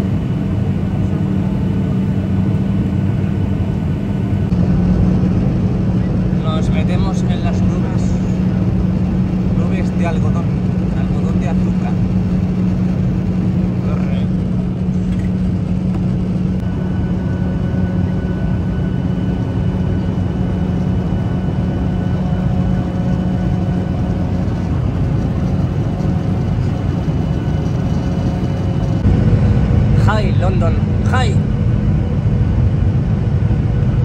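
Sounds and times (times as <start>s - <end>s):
jet engine and airflow noise: 0.0s - 34.0s.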